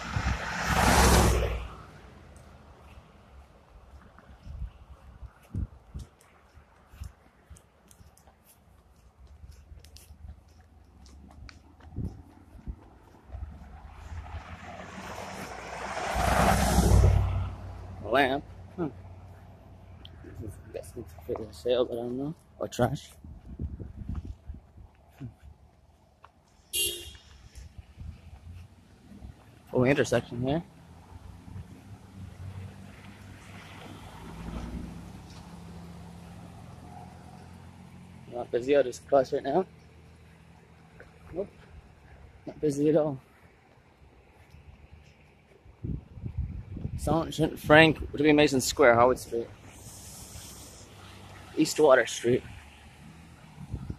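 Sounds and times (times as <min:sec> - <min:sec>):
vehicle driving past: 0:00.0 - 0:03.4, 0:12.3 - 0:21.6, 0:28.2 - 0:42.5, 0:49.0 - 0:53.9.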